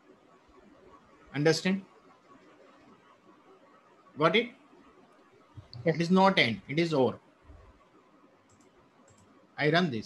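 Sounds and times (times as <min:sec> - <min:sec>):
computer mouse clicks: 0:07.5 - 0:09.5.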